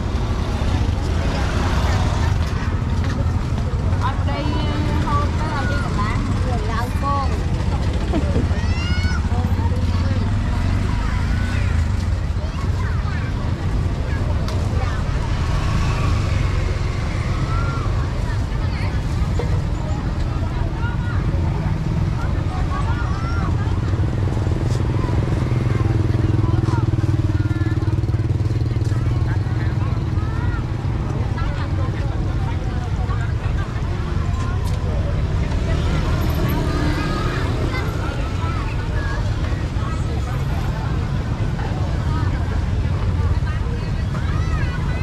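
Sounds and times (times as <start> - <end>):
chatter of passers-by and vendors: 0.0 - 45.0
motorbike engines: 0.0 - 45.0
passing traffic rumble: 0.0 - 45.0.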